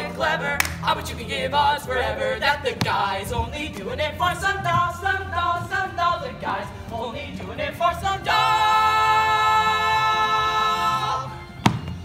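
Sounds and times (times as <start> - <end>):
voices singing a held chord: 0.0 - 11.6.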